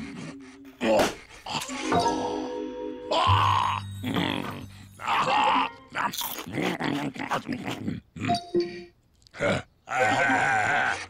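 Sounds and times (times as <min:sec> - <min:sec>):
held musical notes: 0:01.6 - 0:05.0
cartoon bear whimpering: 0:03.0 - 0:08.7.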